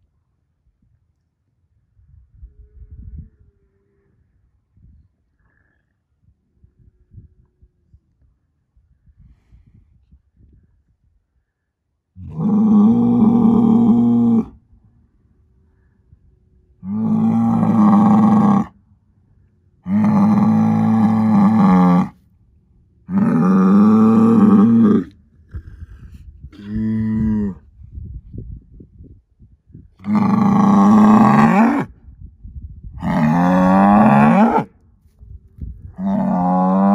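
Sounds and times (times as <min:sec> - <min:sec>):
bull bellowing: 0:12.2 - 0:14.6, 0:16.8 - 0:18.8, 0:19.8 - 0:22.2, 0:23.0 - 0:25.2, 0:30.0 - 0:31.9, 0:33.0 - 0:34.7, 0:36.0 - 0:36.9.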